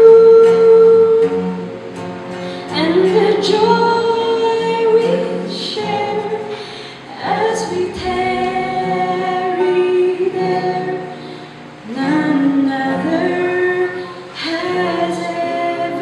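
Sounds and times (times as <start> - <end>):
woman singing solo: 0.0 - 1.7, 2.6 - 16.0.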